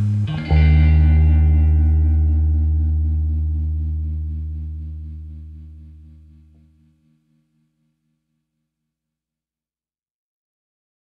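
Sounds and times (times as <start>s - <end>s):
final chord ringing out: 0.0s - 6.6s
deep bass note: 0.0s - 6.9s
guitar tones: 0.0s - 7.2s.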